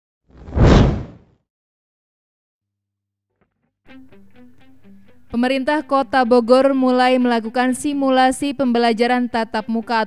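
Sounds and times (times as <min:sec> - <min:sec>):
whoosh sound effect: 0:00.4 - 0:01.2.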